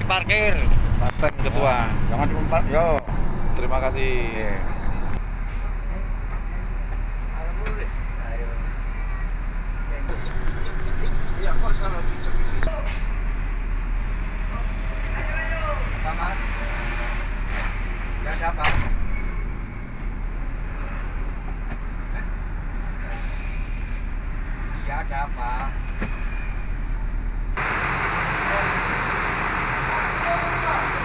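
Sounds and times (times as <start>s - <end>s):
bus engine drone: 0.0s - 31.0s
road noise: 0.0s - 31.0s.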